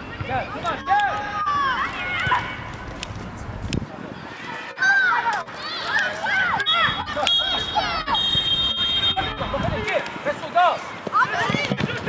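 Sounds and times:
voices shouting and calling out: 0.0s - 3.1s, 3.9s - 12.0s.

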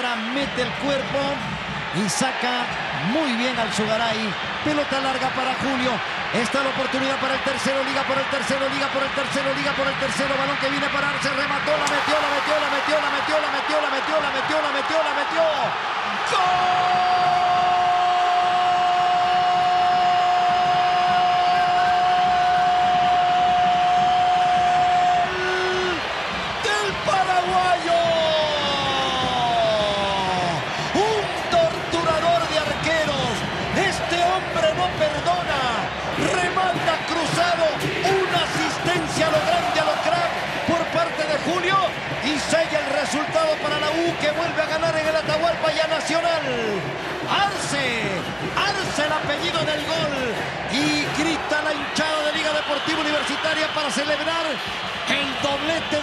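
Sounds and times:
stadium crowd noise: 0.0s - 56.0s.

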